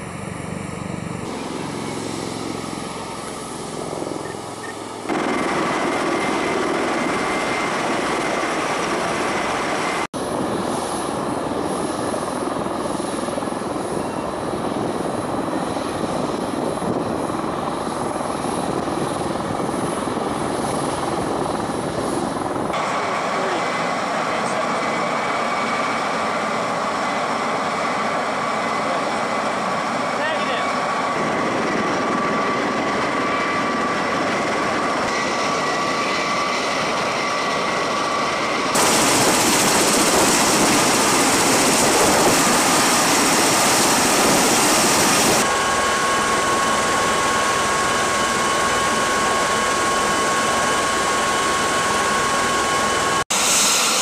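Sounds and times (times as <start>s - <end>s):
rotor and turbine noise: 0.0s - 54.0s
steady high whine: 0.0s - 54.0s.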